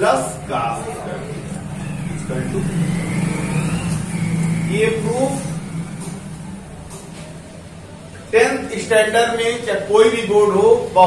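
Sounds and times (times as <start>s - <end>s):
faint rising whine: 0.0s - 10.0s
low mechanical hum: 0.0s - 11.0s.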